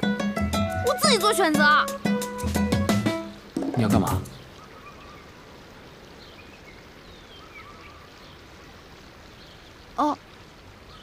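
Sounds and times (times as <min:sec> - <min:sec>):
river water running: 0:00.0 - 0:11.0.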